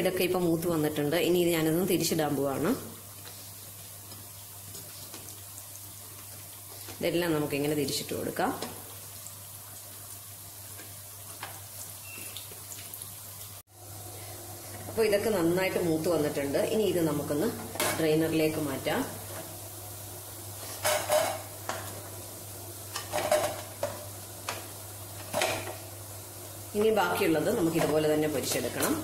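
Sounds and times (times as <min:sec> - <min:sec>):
person talking: 0:00.0 - 0:02.9, 0:07.0 - 0:08.7, 0:14.9 - 0:19.2, 0:26.8 - 0:29.0
fritters sizzling in hot oil: 0:00.0 - 0:29.0.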